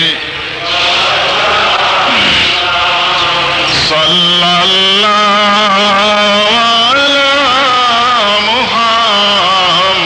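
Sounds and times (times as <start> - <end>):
devotional chanting: 0.0 - 10.0.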